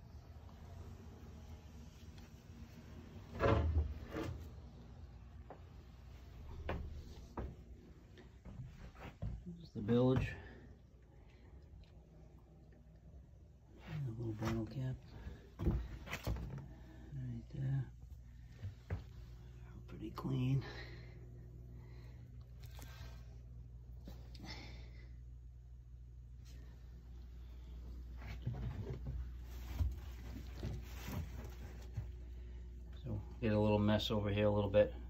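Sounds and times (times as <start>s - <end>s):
steady low hum: 0.0s - 35.0s
knocks and rustles of handling: 28.1s - 32.3s.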